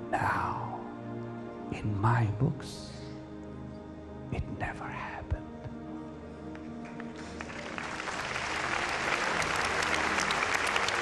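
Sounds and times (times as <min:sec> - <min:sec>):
soft background music: 0:00.0 - 0:11.0
congregation applauding: 0:06.6 - 0:11.0.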